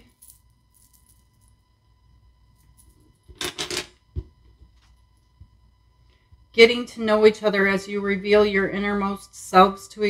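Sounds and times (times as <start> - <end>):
beads jangling clatter: 0.0 - 1.5.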